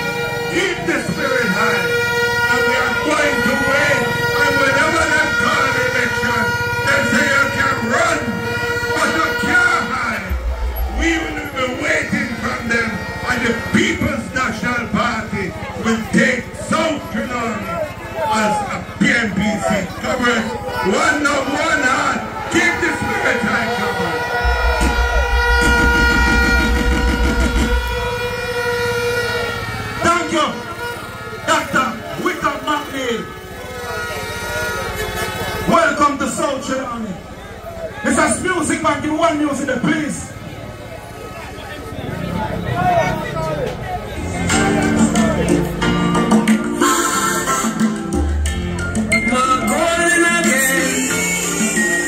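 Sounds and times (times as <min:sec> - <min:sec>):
high horn-like drone: 0:00.0 - 0:15.5, 0:22.2 - 0:35.7, 0:44.1 - 0:48.5
crowd shouting and cheering: 0:00.0 - 0:52.0
fast low pulsing: 0:10.2 - 0:13.1, 0:24.1 - 0:29.2.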